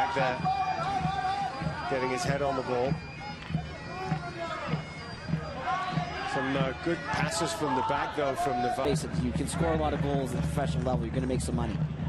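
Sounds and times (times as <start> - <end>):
faint voices: 0.0 - 10.8
dull beat: 0.0 - 12.0.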